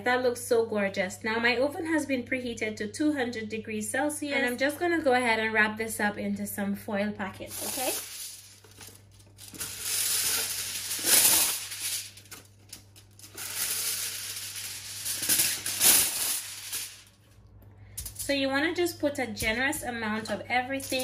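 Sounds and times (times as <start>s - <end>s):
kitchen foil crinkling: 7.5s - 17.2s.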